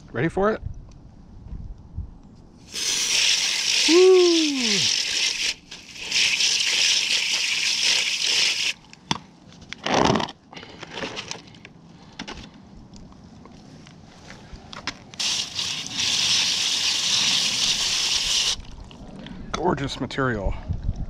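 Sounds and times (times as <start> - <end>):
hose nozzle spraying water: 2.6 - 8.8, 15.2 - 18.7.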